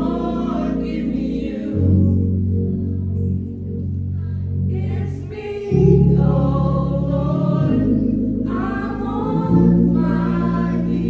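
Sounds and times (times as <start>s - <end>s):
group singing a hymn: 0.0s - 3.4s, 4.2s - 11.0s
sustained low chords: 0.0s - 11.0s.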